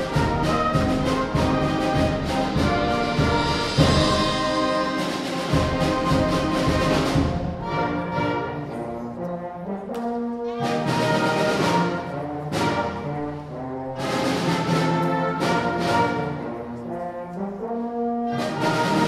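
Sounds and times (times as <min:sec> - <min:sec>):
cymbal and drum strikes: 0:00.0 - 0:07.6
concert band playing brass chords: 0:00.0 - 0:19.0.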